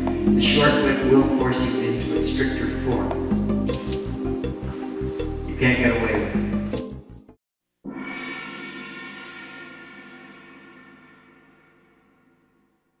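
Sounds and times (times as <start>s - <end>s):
background music: 0.0s - 7.4s
gong-like ringing tone: 7.9s - 13.0s.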